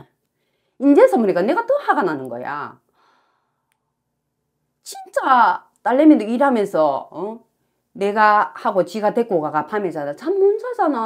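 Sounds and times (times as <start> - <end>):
woman breathing in: 0.3 - 0.8, 2.9 - 4.0.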